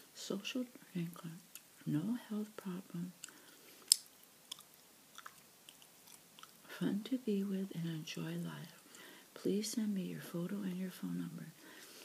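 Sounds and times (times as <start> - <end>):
bubble gum chewing clicks: 3.2 - 6.7.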